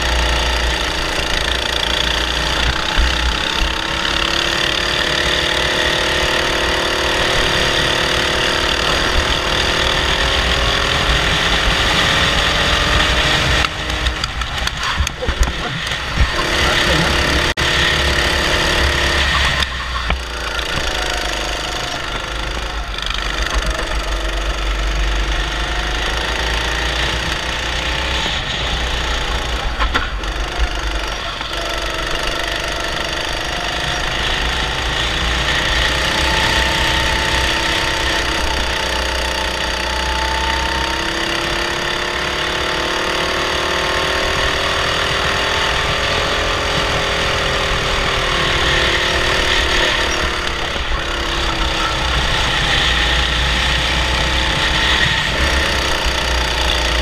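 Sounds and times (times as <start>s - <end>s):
kart engine revving under load: 0.0s - 57.0s.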